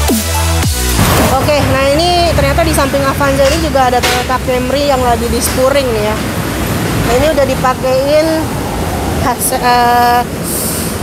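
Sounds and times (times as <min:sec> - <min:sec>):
person talking: 0:01.3 - 0:06.2, 0:07.0 - 0:08.5, 0:09.2 - 0:10.3.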